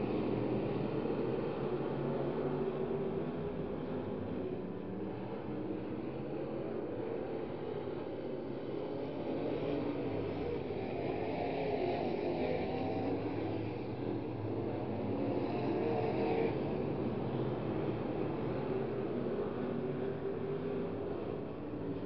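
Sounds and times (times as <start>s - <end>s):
race car engines droning: 0.0s - 22.0s.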